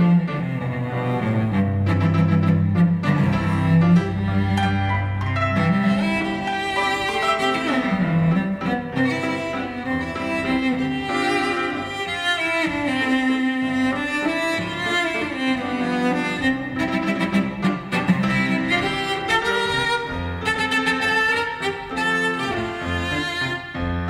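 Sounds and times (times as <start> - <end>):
bowed cello melody: 0.0 - 24.0.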